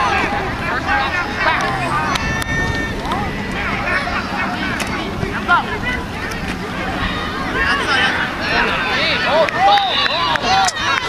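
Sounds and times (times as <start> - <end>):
voices shouting: 0.0 - 11.0.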